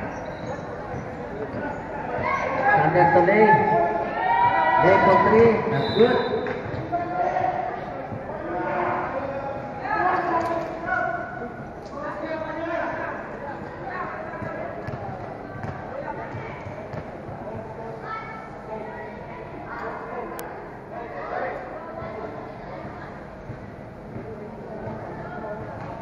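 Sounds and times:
basketball bouncing on concrete: 14.3 - 17.4.

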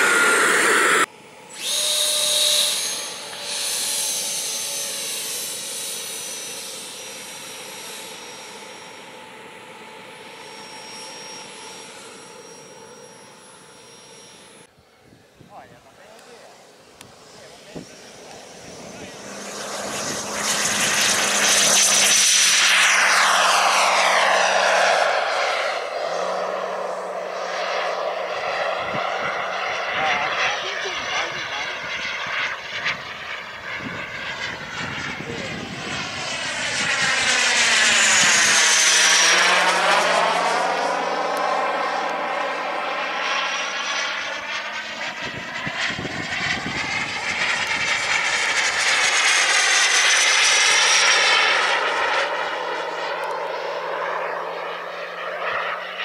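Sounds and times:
model jet engine whine: 0.0 - 56.0.

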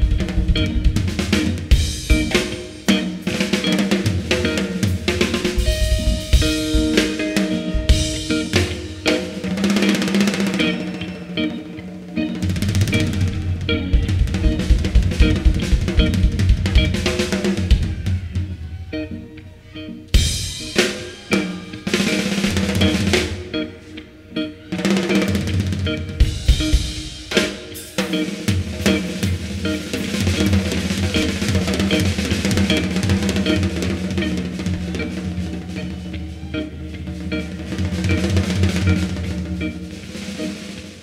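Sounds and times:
drum kit beat: 0.0 - 18.6, 20.1 - 41.0.

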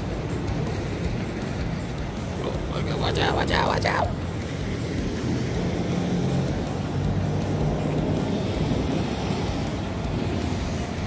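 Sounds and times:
vehicle engine hum: 0.0 - 11.0
tyre noise on asphalt: 3.4 - 11.0.

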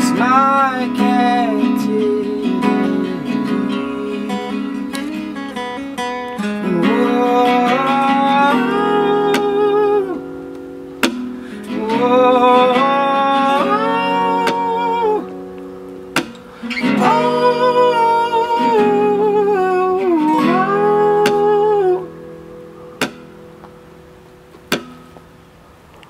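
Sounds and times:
acoustic guitars strummed and picked: 0.0 - 26.0
man singing held notes: 11.7 - 15.3, 16.8 - 22.1
sharp click: 16.2 - 16.4, 23.0 - 23.3.

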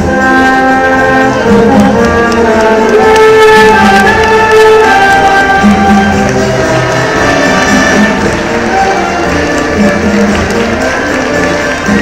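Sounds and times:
concert band playing: 0.0 - 12.0
congas and drums: 0.0 - 12.0.

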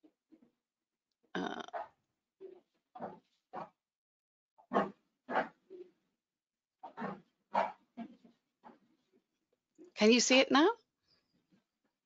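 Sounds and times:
dog barking: 4.7 - 5.6, 6.8 - 7.8.

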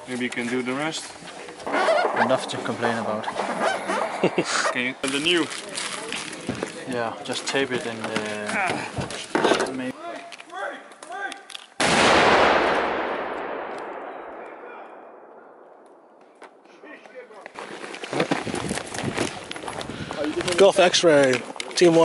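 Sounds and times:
explosive blast: 11.8 - 16.2.

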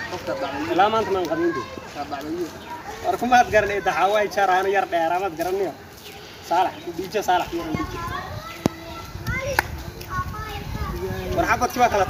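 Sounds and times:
high-pitched voices talking: 6.8 - 12.0.

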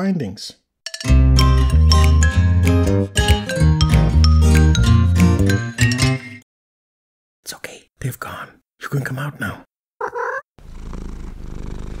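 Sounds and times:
cat meowing: 10.0 - 10.5
cat purring: 10.0 - 12.0.

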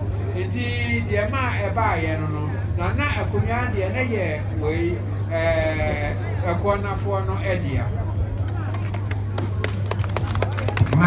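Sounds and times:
low electrical hum: 0.0 - 11.0
man's voice through microphone: 0.2 - 8.2.

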